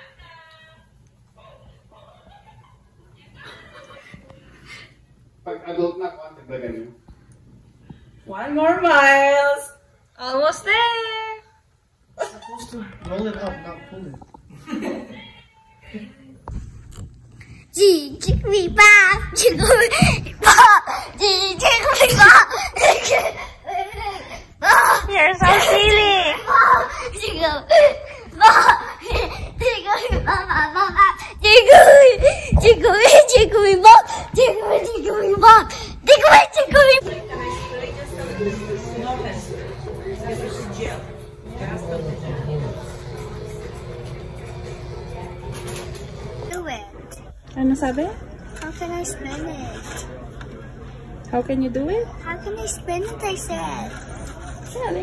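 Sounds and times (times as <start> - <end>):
boy laughing and shrieking: 19.5 - 25.1, 26.5 - 33.3
electric hair clippers buzzing: 41.6 - 46.6.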